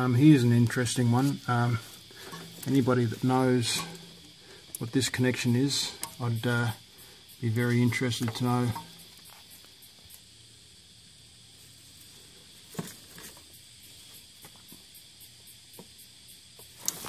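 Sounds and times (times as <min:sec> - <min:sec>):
faint steady hiss: 0:00.0 - 0:17.0.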